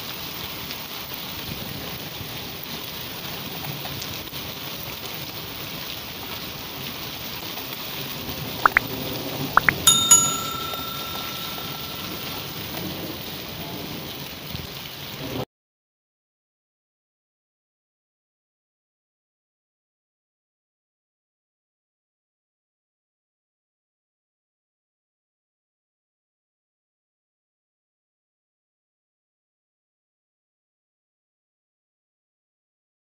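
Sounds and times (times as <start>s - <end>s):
rain and sleet on concrete: 0.0s - 15.5s
bell-like ding: 9.6s - 12.8s.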